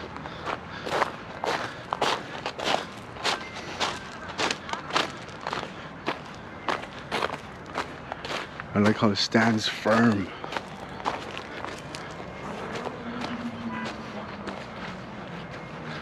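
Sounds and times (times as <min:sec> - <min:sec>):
footsteps on gravel and grass: 0:00.0 - 0:16.0.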